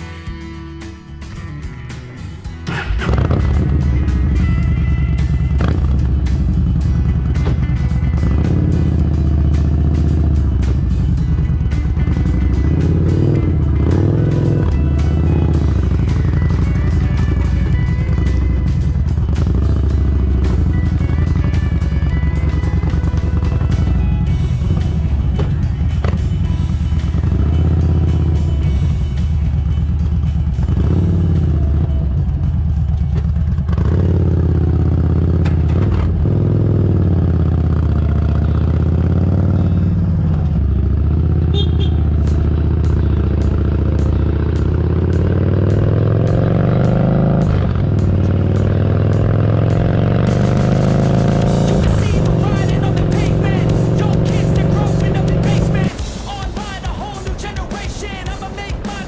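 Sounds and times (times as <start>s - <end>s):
background music with beat: 0.0s - 59.0s
vehicle engine running: 0.0s - 59.0s.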